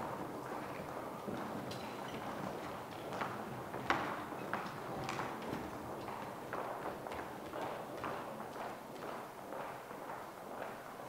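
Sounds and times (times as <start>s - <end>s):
hard-soled footsteps on stage: 0.0s - 11.0s.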